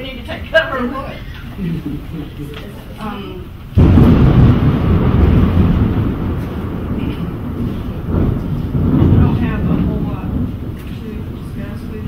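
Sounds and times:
thunder crack and rumble: 0:03.8 - 0:12.0.

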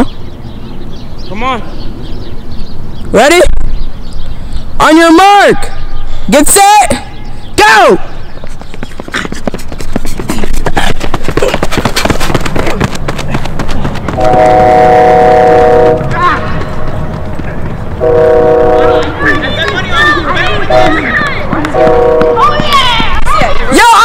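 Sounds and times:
train horn blasts: 0:14.2 - 0:16.1, 0:18.0 - 0:19.2, 0:20.7 - 0:21.0, 0:21.7 - 0:22.4
kids shouting: 0:18.8 - 0:24.0.

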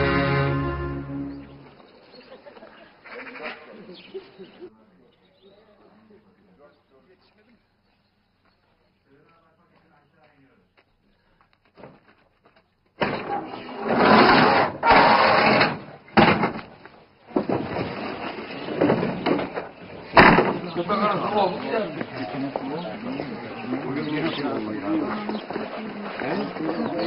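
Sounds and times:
harsh scraping: 0:13.5 - 0:15.9.

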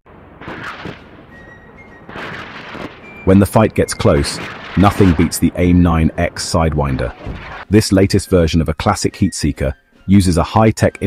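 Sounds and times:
jet engines roaring: 0:00.1 - 0:07.7
faint high whistle: 0:01.3 - 0:02.2.

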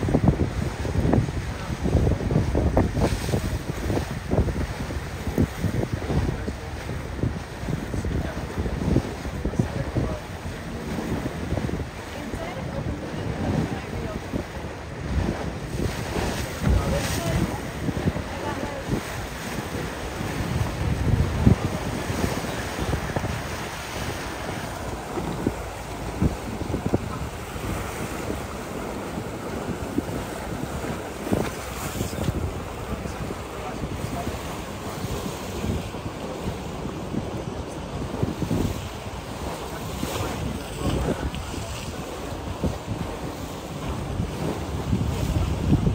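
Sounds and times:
water rushing and splashing: 0:00.0 - 0:45.9
wind buffeting microphone: 0:00.0 - 0:45.9.

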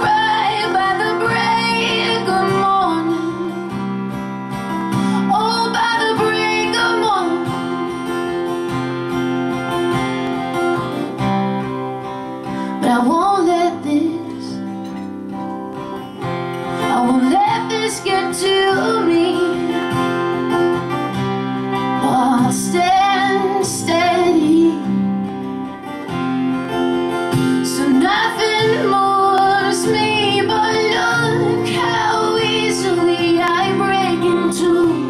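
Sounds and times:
woman singing: 0:00.0 - 0:03.9, 0:04.9 - 0:08.1, 0:12.5 - 0:15.0, 0:16.7 - 0:20.3, 0:21.8 - 0:25.2, 0:27.5 - 0:35.0
strummed acoustic guitar: 0:00.0 - 0:35.0.

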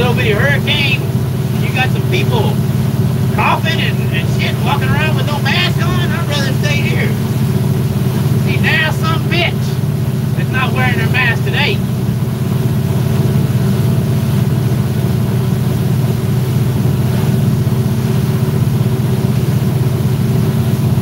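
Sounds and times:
man's voice: 0:00.0 - 0:02.6, 0:03.4 - 0:07.3, 0:08.4 - 0:09.8, 0:10.4 - 0:11.9
motorboat engine droning: 0:00.0 - 0:21.0
rushing water noise: 0:00.0 - 0:21.0.

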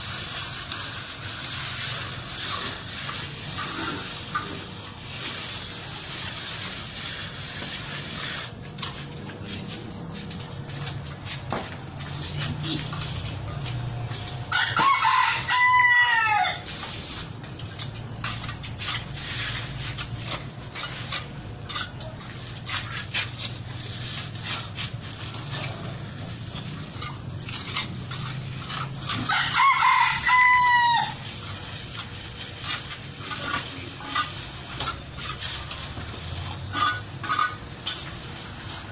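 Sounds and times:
rooster crowing: 0:14.5 - 0:16.7, 0:29.3 - 0:31.2
faint scraping: 0:16.6 - 0:29.3, 0:31.1 - 0:38.9.

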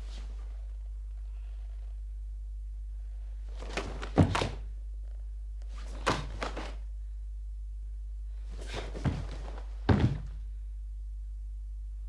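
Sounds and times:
bare foot thudding on floor: 0:03.5 - 0:04.7, 0:05.7 - 0:06.8, 0:08.5 - 0:10.5
cloth uniform snapping: 0:05.7 - 0:06.8.

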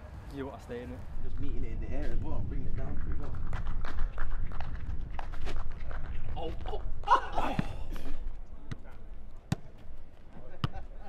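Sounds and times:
steady low rumble: 0:01.0 - 0:10.2
foot kicking football: 0:03.5 - 0:11.0.

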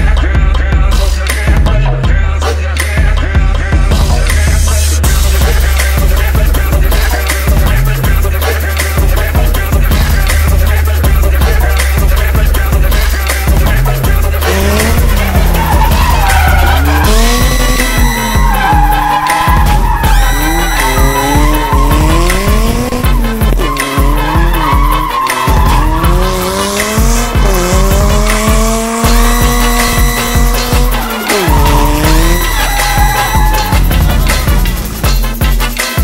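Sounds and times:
bass-heavy music: 0:00.0 - 0:36.0
car engine revving: 0:04.2 - 0:35.4
tyres squealing: 0:13.0 - 0:34.5.

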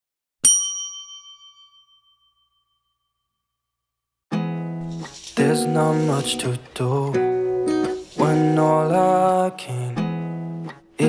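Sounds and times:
bell-like ding: 0:00.4 - 0:03.6.

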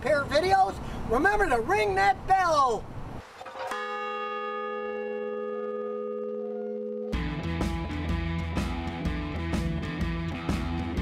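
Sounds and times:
large bronze bell ringing: 0:03.6 - 0:07.5.

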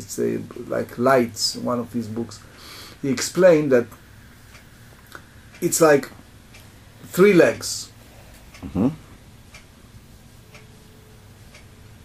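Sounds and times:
faint clock ticking: 0:00.0 - 0:12.0.

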